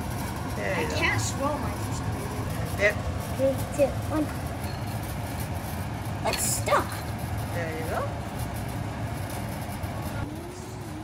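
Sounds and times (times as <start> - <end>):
kitchen background rumble: 0.0 - 11.0.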